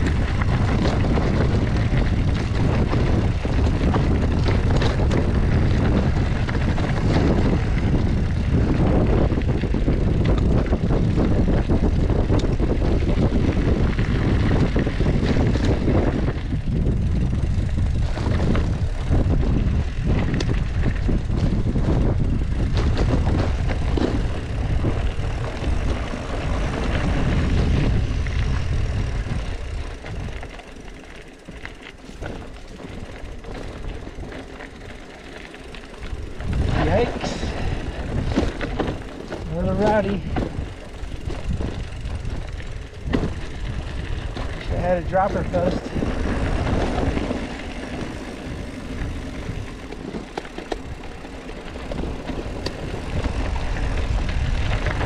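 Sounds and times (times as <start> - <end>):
bike clicks and rattles: 0.0 - 55.0
bike tyres on dirt: 0.0 - 55.0
wind buffeting microphone: 0.0 - 55.0.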